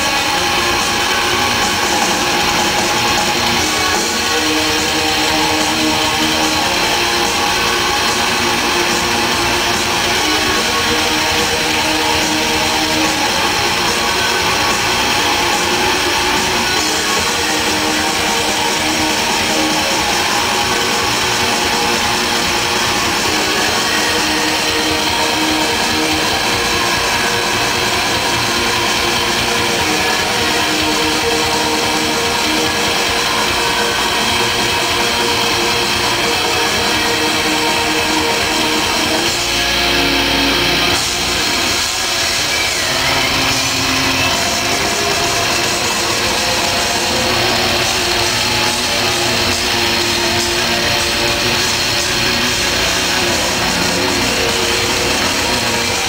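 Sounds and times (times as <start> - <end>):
bass guitar: 0.0 - 56.0
black metal band playing live: 0.0 - 56.0
distorted electric guitars: 0.0 - 56.0
drums: 0.0 - 56.0.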